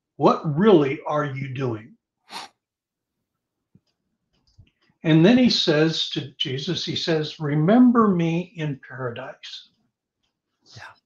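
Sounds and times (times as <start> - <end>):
sharp breathy burst: 2.3 - 2.6.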